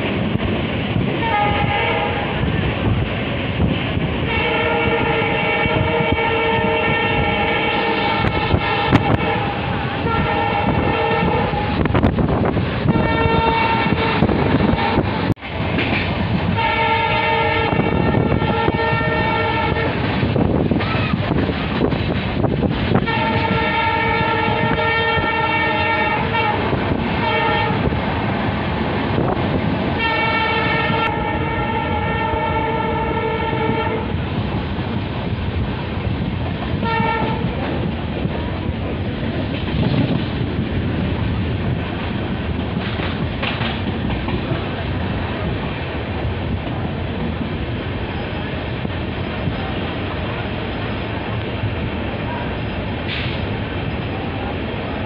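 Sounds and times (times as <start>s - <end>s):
train coaches rumbling on track: 0.0s - 55.0s
locomotive air horn blasts: 1.2s - 2.4s, 4.2s - 12.0s, 12.8s - 15.0s, 16.5s - 20.0s, 22.9s - 27.9s, 30.0s - 34.2s, 36.8s - 37.6s.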